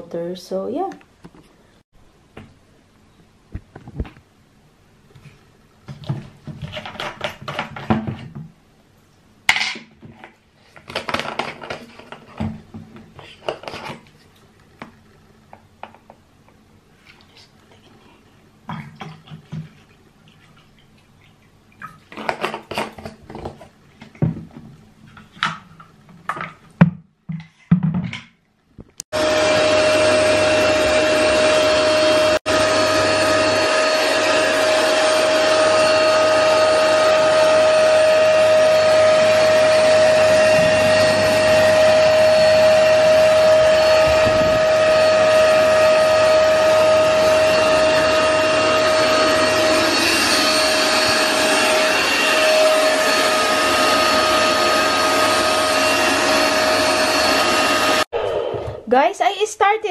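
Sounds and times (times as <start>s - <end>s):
carpet cleaner motor whine: 29.2s - 58.8s.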